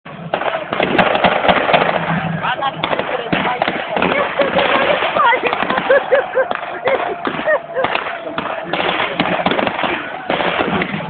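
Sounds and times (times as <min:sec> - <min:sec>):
crowd murmur: 0:00.1 - 0:11.0
blank gunfire cracks: 0:02.8 - 0:11.0.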